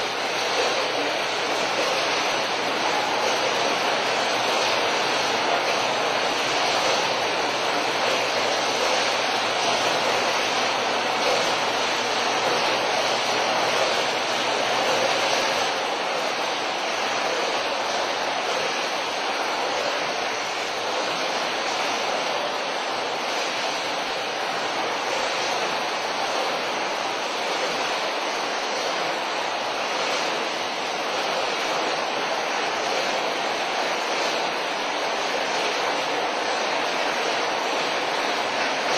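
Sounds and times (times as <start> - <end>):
industrial background noise: 0.0 - 38.9.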